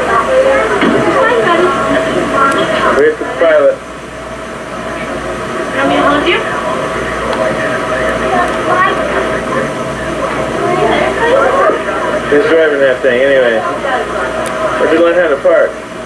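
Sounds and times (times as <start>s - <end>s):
people talking indistinctly: 0.0s - 15.9s
low rumble of airport noise: 0.0s - 16.0s.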